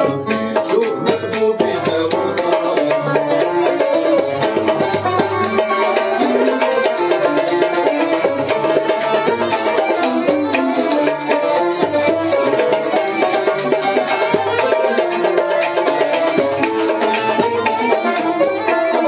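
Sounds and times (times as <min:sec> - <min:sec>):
banjos and lute plucking melody: 0:00.0 - 0:19.0.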